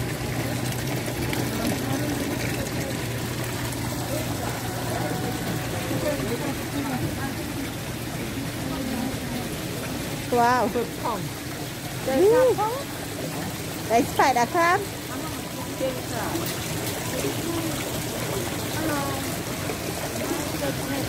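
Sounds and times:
low pump hum: 0.0 - 21.0
water running and trickling: 0.0 - 21.0
murmur of voices: 0.6 - 14.1, 14.8 - 21.0.

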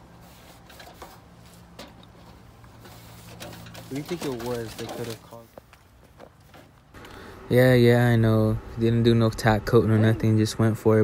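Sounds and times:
cloth rag wiping metal panel: 0.0 - 5.5.

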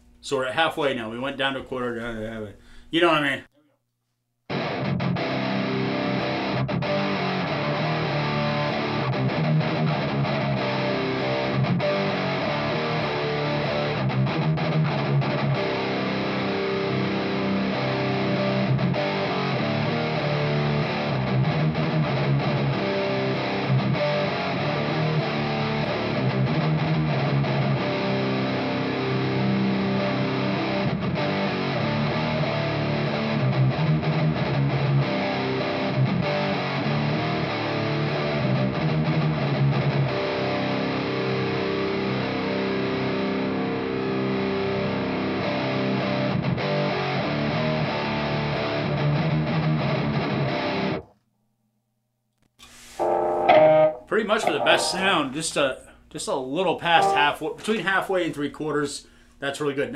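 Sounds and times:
distorted electric guitar riffing: 4.5 - 51.0, 53.0 - 55.4, 56.8 - 57.5.

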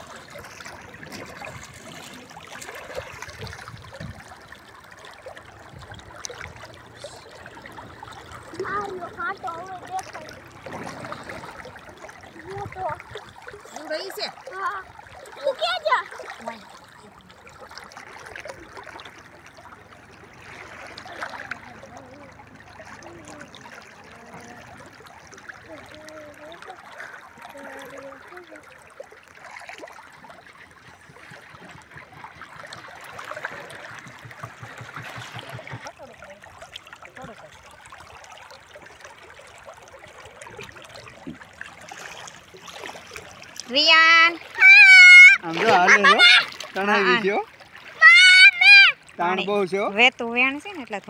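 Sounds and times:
shallow river water trickling: 0.0 - 51.0.

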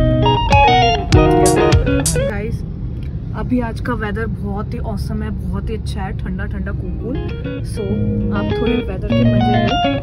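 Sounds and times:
woman talking: 2.2 - 2.6, 3.3 - 9.9.

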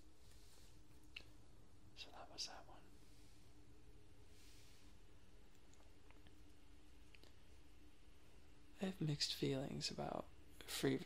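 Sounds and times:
person whispering: 2.0 - 3.0.

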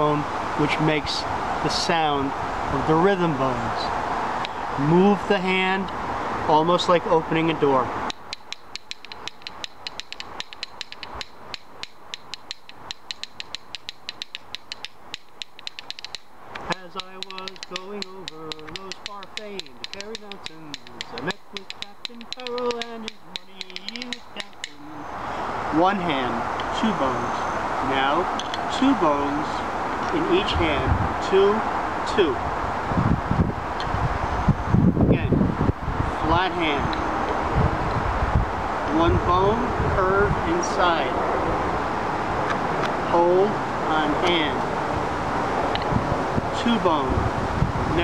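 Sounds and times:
man talking: 0.0 - 4.0, 4.7 - 8.0, 16.6 - 32.5, 35.0 - 35.4, 36.1 - 37.0, 38.8 - 41.3, 43.0 - 44.8, 46.5 - 48.0
wind buffeting microphone: 0.0 - 48.0
rhythm bones clicking: 8.1 - 25.0.

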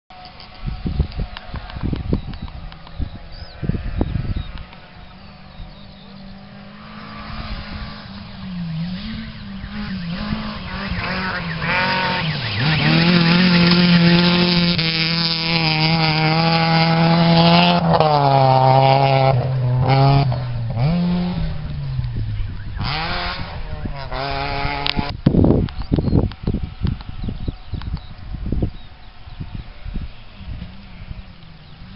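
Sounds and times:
gear changes: 4.5 - 31.9
rally car engine at high revs: 5.5 - 27.3.

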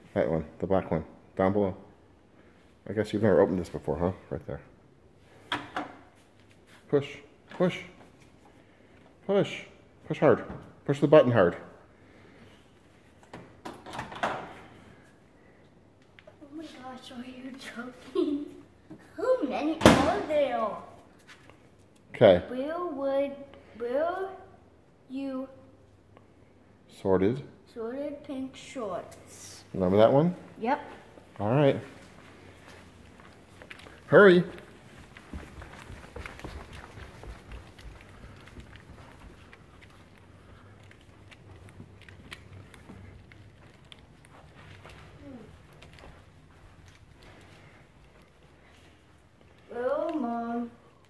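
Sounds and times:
footsteps running up carpeted stairs: 32.0 - 49.0.

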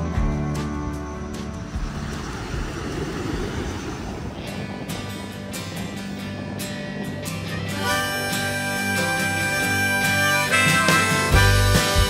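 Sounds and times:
ocean surf breaking on beach: 1.7 - 7.8.

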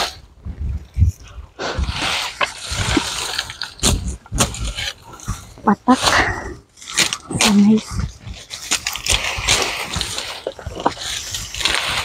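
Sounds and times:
dry palm fronds crackling: 1.7 - 12.0
sharp snaps and scrapes: 1.9 - 12.0.

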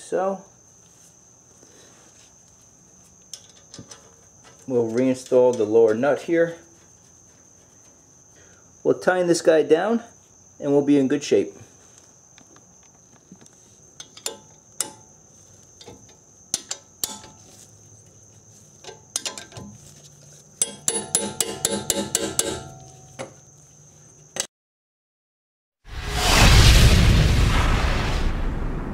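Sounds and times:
cricket trill: 0.0 - 24.5
metal clicks and clinks: 14.0 - 15.1, 18.8 - 19.7, 20.6 - 23.4
rushing boom sound effect: 25.9 - 28.9.

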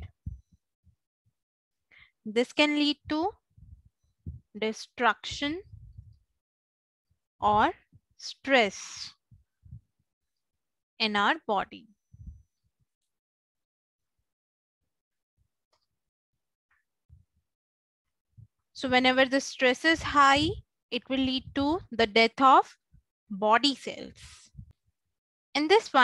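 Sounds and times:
person speaking: 2.3 - 3.4, 7.4 - 7.8, 18.8 - 22.2
faint low thuds: 3.0 - 4.5, 5.3 - 6.2, 20.0 - 21.9.

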